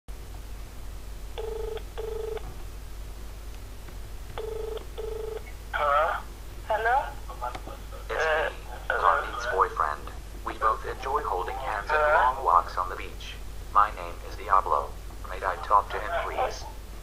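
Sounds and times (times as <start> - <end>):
telephone ringback tone: 1.4 - 2.4, 4.4 - 5.5
voice on phone line: 15.3 - 16.6.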